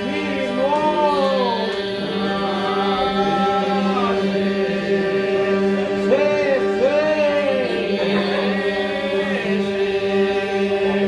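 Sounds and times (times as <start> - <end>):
higher lead vocal line: 0.0 - 11.0
men singing low drone: 0.0 - 11.0.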